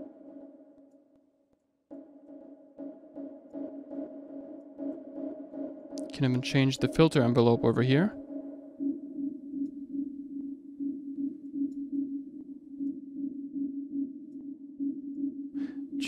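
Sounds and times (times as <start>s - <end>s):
dark synth pad tone: 1.9s - 16.0s.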